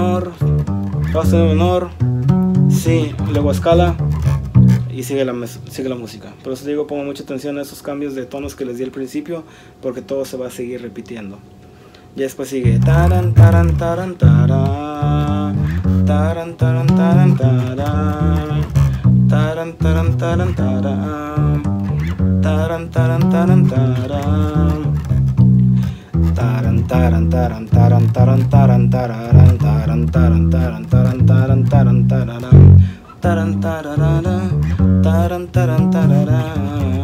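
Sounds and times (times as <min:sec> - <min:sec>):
electric bass plucked notes: 0:00.0 - 0:06.2, 0:12.6 - 0:37.0.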